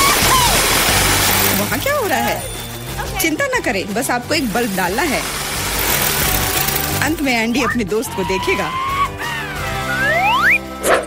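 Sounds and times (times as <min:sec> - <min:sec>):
hammer drill boring into wall: 0:04.7 - 0:07.1.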